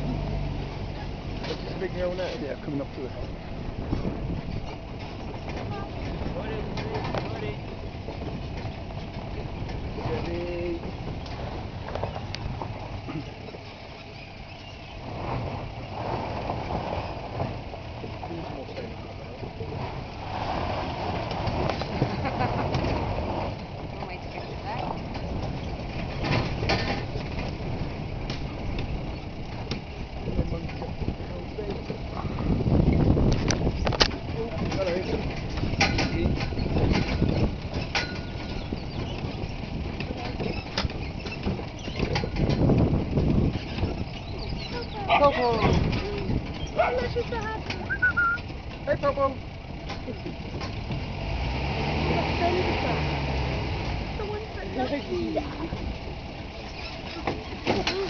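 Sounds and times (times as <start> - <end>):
knocks and rattles from bumps: 0.0 - 20.1, 20.7 - 58.0
truck engine: 0.0 - 58.0.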